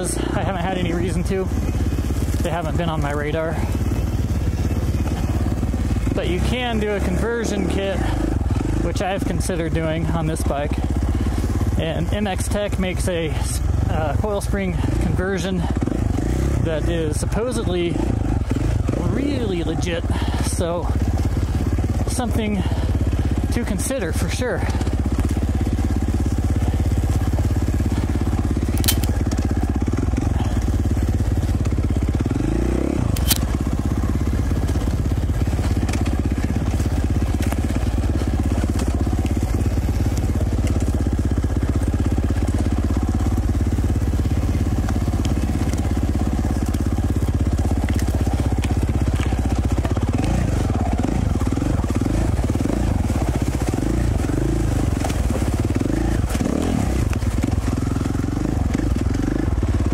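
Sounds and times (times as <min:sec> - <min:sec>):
dirt bike engine running: 0:00.0 - 0:59.9
sharp clicks: 0:28.7 - 0:29.4, 0:33.1 - 0:33.6.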